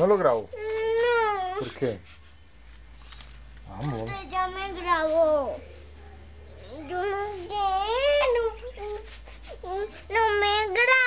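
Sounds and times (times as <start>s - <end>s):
boy crying: 6.9s - 11.0s.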